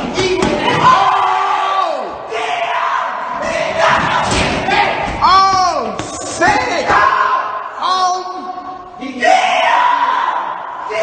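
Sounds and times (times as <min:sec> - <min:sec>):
people shouting: 0:00.0 - 0:08.3, 0:09.1 - 0:11.0.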